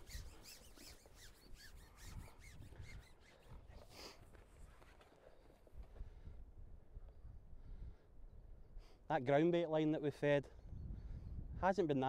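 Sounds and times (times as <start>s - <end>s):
low wind rumble on microphone: 5.7s - 8.8s, 10.5s - 11.8s.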